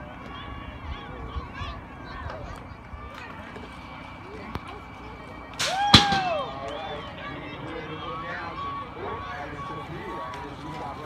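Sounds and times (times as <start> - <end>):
crowd shouting: 0.0 - 11.0
outdoor babble of voices: 0.0 - 11.0
starting gate dropping with slam: 5.6 - 6.5.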